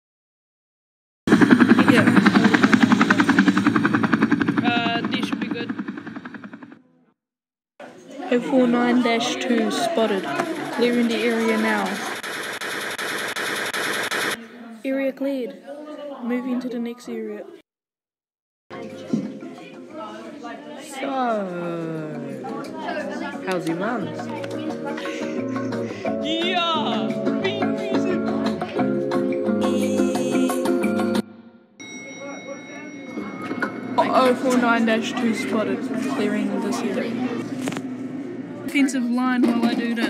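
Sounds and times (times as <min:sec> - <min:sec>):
faint voices: 0:01.6 - 0:05.7, 0:07.8 - 0:12.2, 0:18.7 - 0:30.8
machine-gun fire: 0:10.2 - 0:14.4
latin-style background music: 0:21.5 - 0:31.3
high ringing tone: 0:31.8 - 0:34.7.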